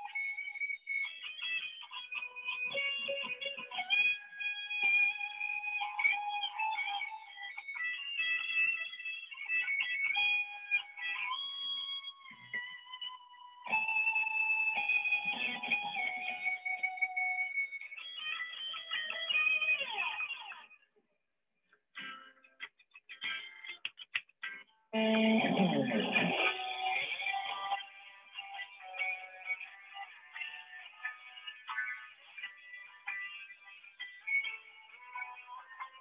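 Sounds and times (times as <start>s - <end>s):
electric guitar solo: 0.0s - 20.8s, 22.0s - 36.0s.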